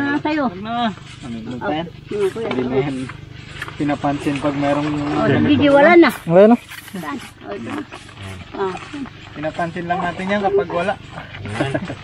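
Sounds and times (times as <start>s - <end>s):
soft voices talking: 0.0s - 12.0s.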